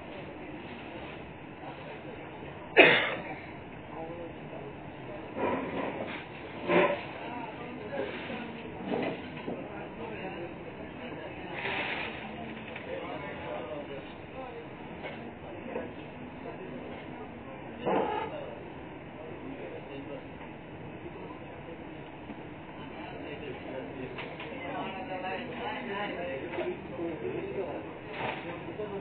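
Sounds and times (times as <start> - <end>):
murmur of voices: 0.0 - 29.0
room background noise: 0.0 - 29.0.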